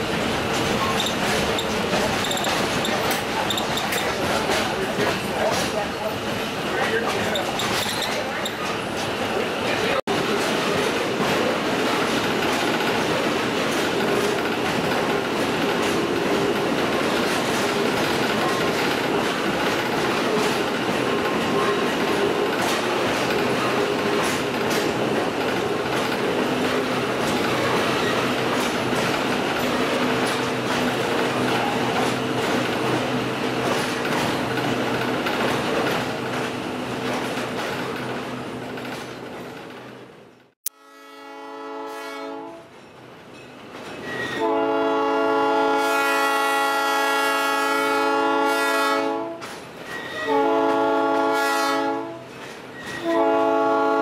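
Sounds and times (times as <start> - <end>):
wheels clicking over rail joints: 0.0 - 9.4, 10.2 - 40.0
train rumbling and rattling: 0.0 - 40.6, 42.5 - 54.0.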